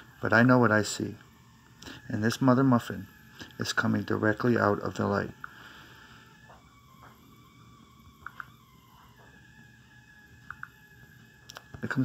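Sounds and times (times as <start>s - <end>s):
faint steady tone: 0.0s - 12.0s
soft clicks: 10.4s - 10.8s.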